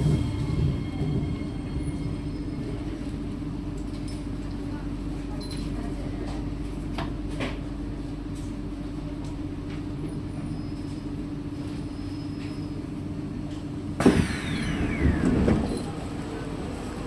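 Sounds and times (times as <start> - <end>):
train hum: 0.0 - 11.8, 12.4 - 17.0.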